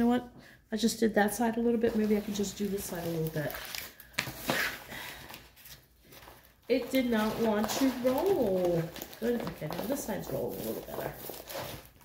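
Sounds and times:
canvas rustling: 0:06.1 - 0:12.0.

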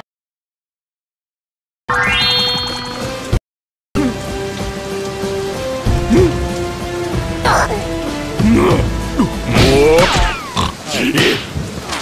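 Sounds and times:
sustained background music: 0:04.0 - 0:10.8
cartoon heavy rain hiss: 0:04.0 - 0:11.9.

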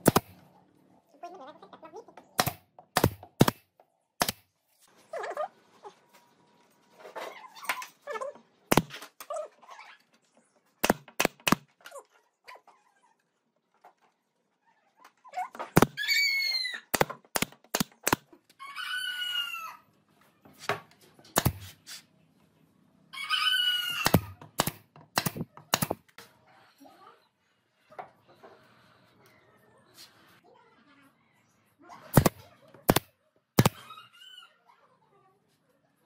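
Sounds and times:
pneumatic nailer firing nails: 0:00.0 - 0:00.4, 0:02.4 - 0:04.4, 0:10.8 - 0:11.7, 0:15.7 - 0:16.0, 0:16.9 - 0:18.3, 0:21.4 - 0:21.7, 0:24.0 - 0:26.0, 0:32.1 - 0:33.8.

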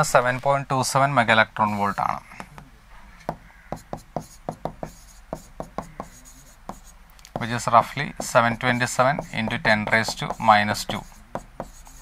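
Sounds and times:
stylus tapping on touchscreen: 0:03.3 - 0:07.5.

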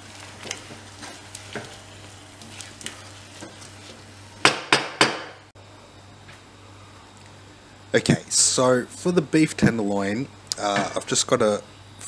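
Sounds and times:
wooden spoon stirring risotto: 0:00.0 - 0:04.2.

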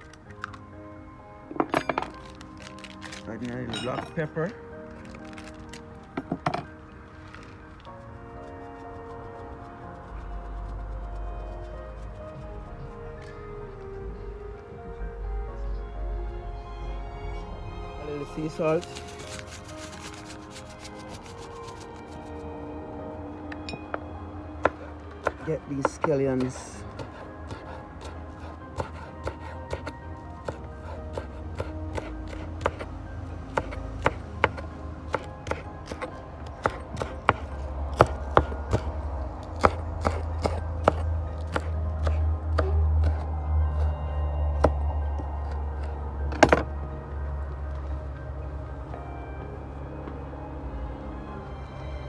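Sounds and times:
background music: 0:00.0 - 0:52.0
knife chopping on wooden board: 0:24.7 - 0:32.9, 0:33.6 - 0:38.9, 0:39.6 - 0:43.2.

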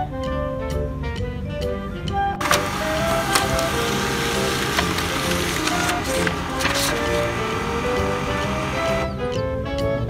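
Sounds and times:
laser printer feeding page: 0:02.4 - 0:09.1
printer clicks: 0:02.4 - 0:09.1.

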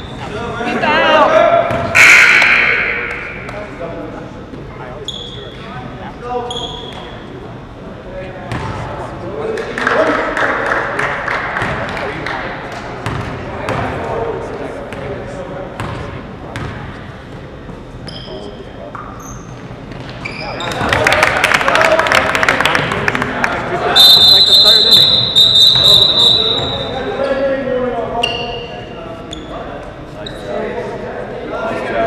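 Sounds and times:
voices of players and spectators: 0:00.0 - 0:32.0
short high whistle blasts: 0:24.0 - 0:27.0.

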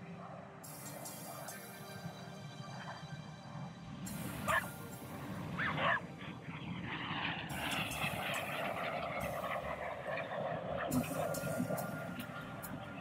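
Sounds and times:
jet engines flying past: 0:00.0 - 0:13.0
dog barks: 0:04.4 - 0:04.7, 0:05.6 - 0:06.0.

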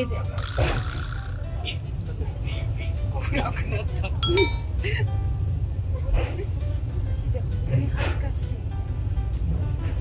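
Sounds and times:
background music: 0:00.0 - 0:10.0
cable car rumbling in a tunnel: 0:00.0 - 0:10.0.

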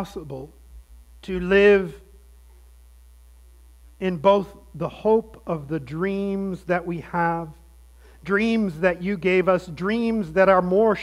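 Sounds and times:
low electrical mains hum: 0:00.0 - 0:11.0.

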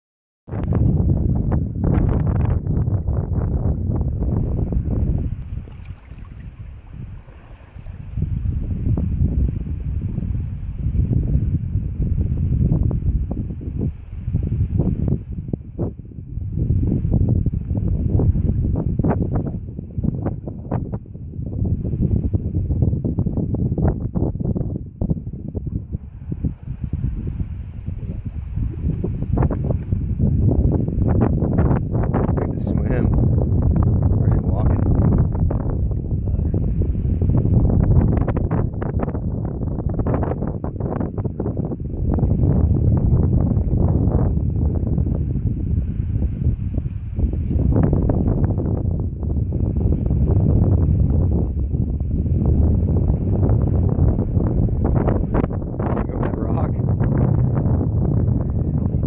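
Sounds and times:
wind buffeting microphone: 0:00.5 - 0:59.0.

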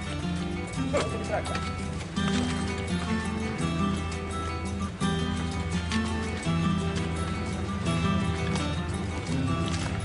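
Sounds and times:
background music with held notes: 0:00.0 - 0:10.0
horse hooves clip-clopping: 0:00.0 - 0:10.0.

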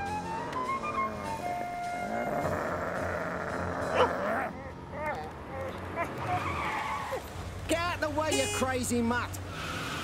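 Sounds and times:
cartoon tyres screeching: 0:05.6 - 0:07.3.

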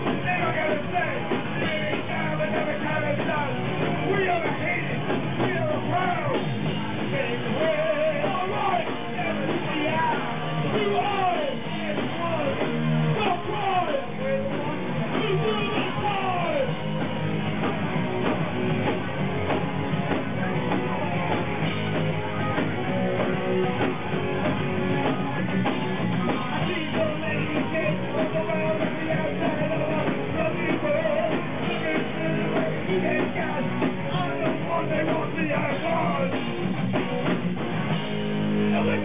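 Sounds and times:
rock band playing live: 0:00.0 - 0:39.0.

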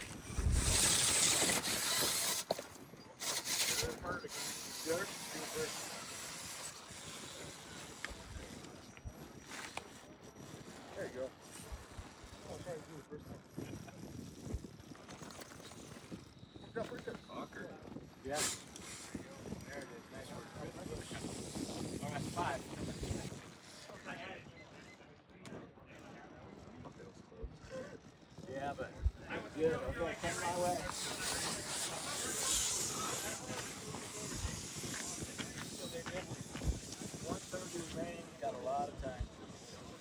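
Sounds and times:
people talking indistinctly: 0:00.0 - 0:40.0.

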